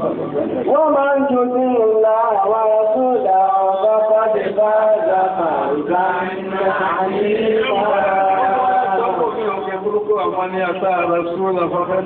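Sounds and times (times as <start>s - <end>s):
melodic religious chanting: 0.7s - 11.6s.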